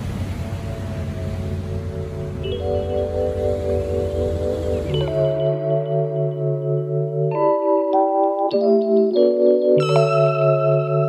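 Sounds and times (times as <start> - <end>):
outdoor noise rush: 0.0 - 6.2
soft keyboard chords: 0.0 - 11.0.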